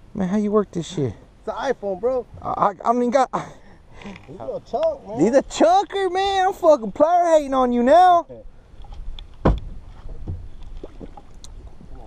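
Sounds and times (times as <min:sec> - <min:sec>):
dull thump on boat: 0:09.4 - 0:11.2.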